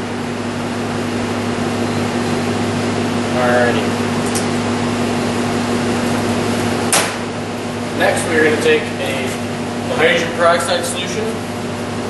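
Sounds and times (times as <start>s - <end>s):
machine hum and hiss: 0.0s - 12.0s
sharp click: 6.9s - 7.2s.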